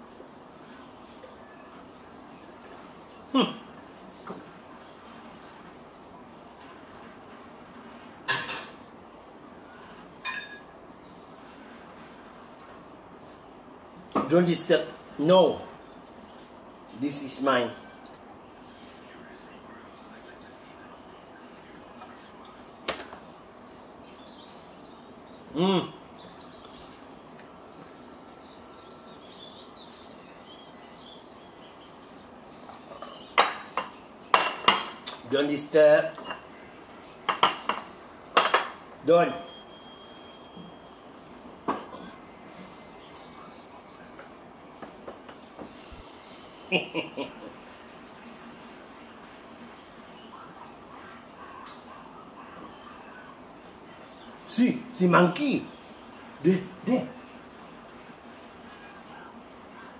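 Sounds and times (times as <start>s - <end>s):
cutlery clinking against ceramic: 10.2s - 10.7s, 32.7s - 35.2s.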